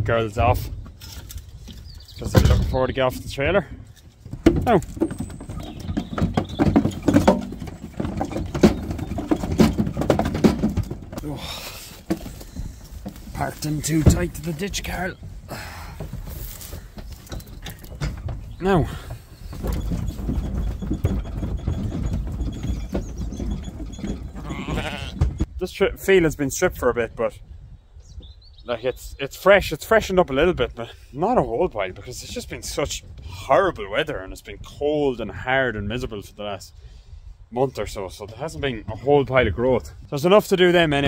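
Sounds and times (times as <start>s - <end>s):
hooves clattering on trailer floor: 0.0s - 25.6s, 37.7s - 41.0s.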